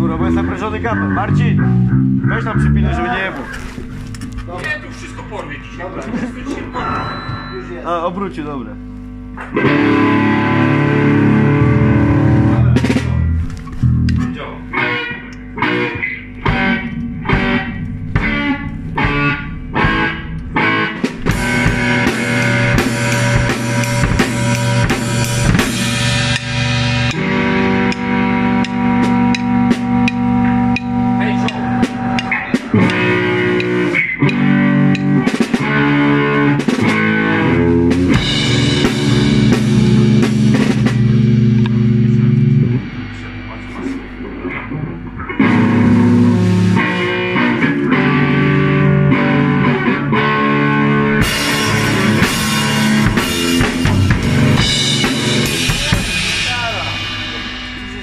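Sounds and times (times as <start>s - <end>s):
rock band playing: 0.0s - 7.9s, 9.1s - 58.0s.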